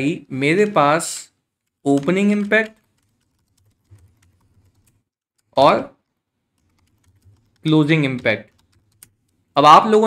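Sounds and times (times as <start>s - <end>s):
faint keyboard typing: 0.3s - 9.6s.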